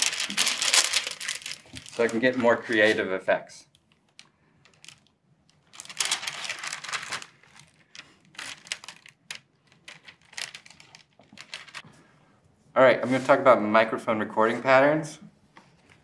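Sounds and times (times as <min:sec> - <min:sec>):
handling rustling and crinkling: 0:00.0 - 0:03.1, 0:03.8 - 0:11.9.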